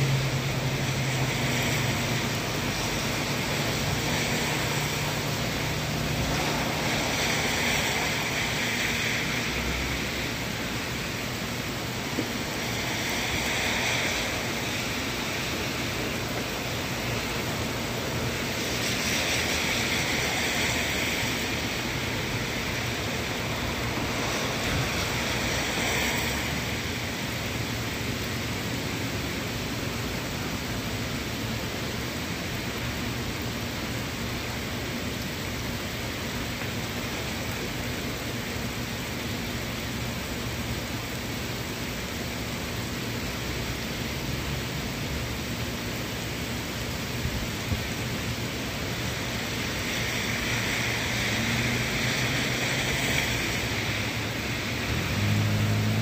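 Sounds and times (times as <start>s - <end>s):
wind in trees: 0.0s - 44.0s, 44.8s - 56.0s
heavy rain pouring: 0.0s - 56.0s.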